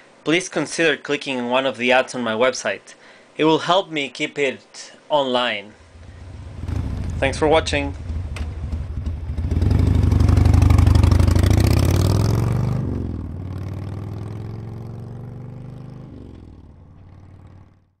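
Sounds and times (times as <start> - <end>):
deep engine-like drone: 5.8 - 11.3.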